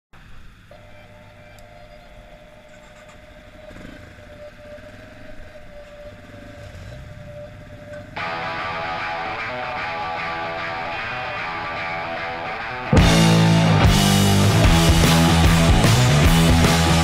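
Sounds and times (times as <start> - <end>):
high-pitched whine: 0.2 - 17.0
motorcycle engine idling: 1.8 - 9.0.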